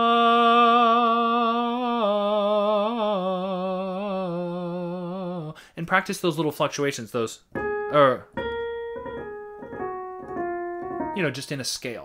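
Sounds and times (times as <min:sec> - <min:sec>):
piano notes stepping through scale: 0:07.5 - 0:11.8.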